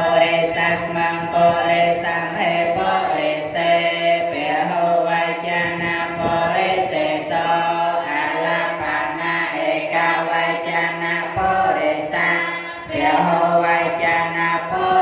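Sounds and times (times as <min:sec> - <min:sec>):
monks chanting in unison: 0:00.0 - 0:15.0.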